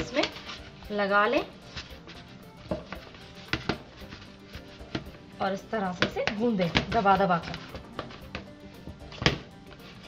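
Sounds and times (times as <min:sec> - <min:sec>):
soft background music: 0:00.0 - 0:10.0
dough tapping against plastic bowl: 0:02.7 - 0:03.9, 0:05.9 - 0:09.5.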